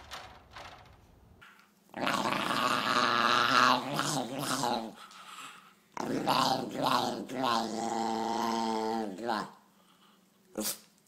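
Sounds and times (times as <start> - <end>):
small dog growling: 1.9 - 5.0, 6.0 - 9.6.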